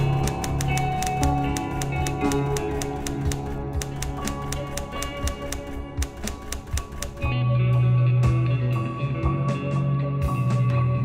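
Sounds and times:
typewriter key clicks: 0.0s - 7.3s
instrumental music: 0.0s - 11.0s.

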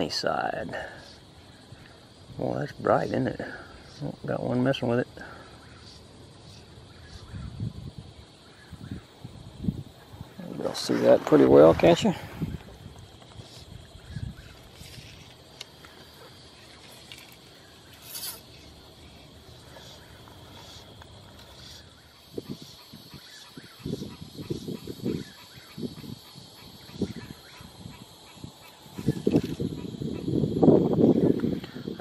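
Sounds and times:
insect chorus drone: 0.0s - 32.0s.

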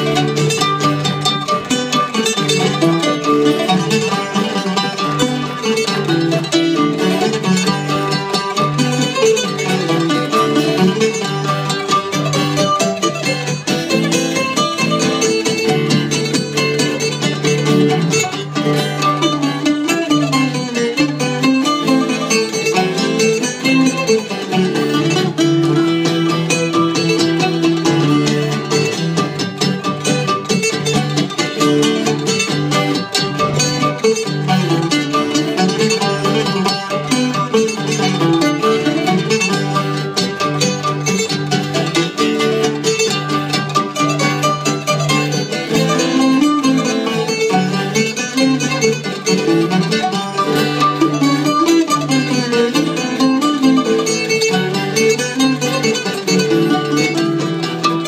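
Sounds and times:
acoustic guitar: 0.0s - 58.0s
plucked lutes: 0.0s - 58.0s.

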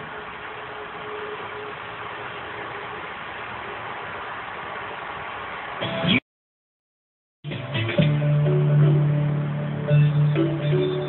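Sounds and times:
steady hiss: 0.0s - 6.2s.

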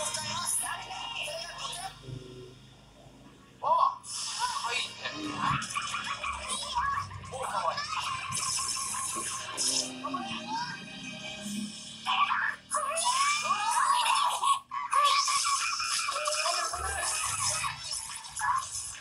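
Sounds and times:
character voices: 0.0s - 19.0s
anime background music: 7.5s - 13.6s.

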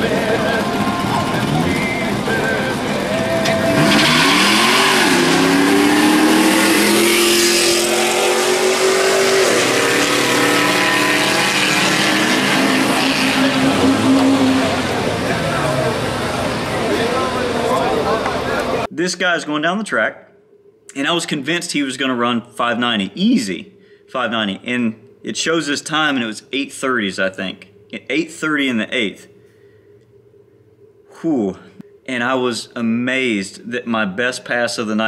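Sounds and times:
bystanders talking: 0.0s - 4.8s, 8.7s - 18.9s
drag racing cars accelerating: 0.0s - 18.9s.

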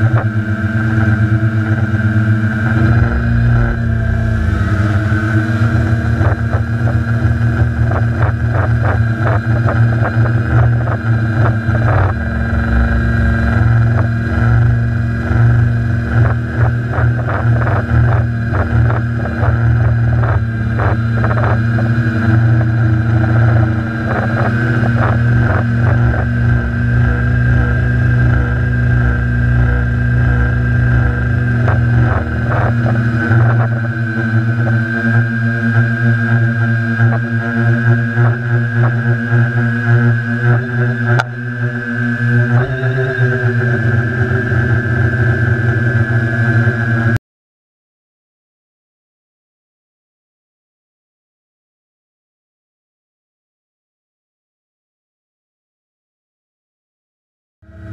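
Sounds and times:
drone motors whining: 0.0s - 47.2s, 57.7s - 57.9s.

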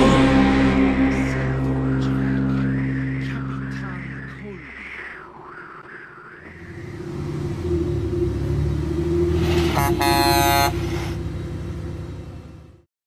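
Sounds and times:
faint wavering high tone: 0.0s - 10.8s
vehicle engine rumble: 0.0s - 12.9s
vehicle horn blast: 9.6s - 11.2s.

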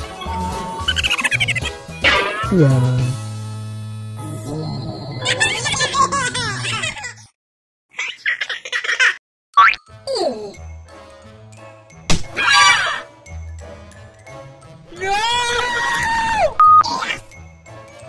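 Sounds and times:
cartoon music: 0.1s - 3.2s.

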